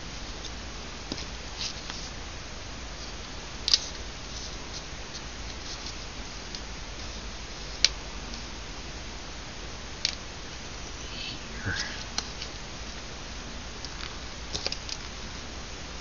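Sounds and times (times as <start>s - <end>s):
steady hiss: 0.0s - 16.0s.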